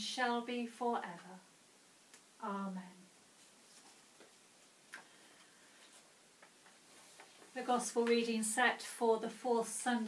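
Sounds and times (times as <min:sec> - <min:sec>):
paper sheets rustling: 0:03.4 - 0:07.6.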